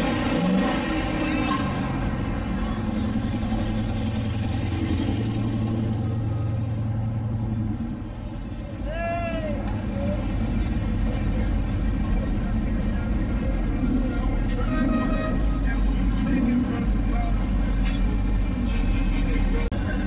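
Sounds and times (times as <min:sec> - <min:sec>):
crowd voices: 0:01.0 - 0:20.0
person shouting: 0:08.8 - 0:09.7.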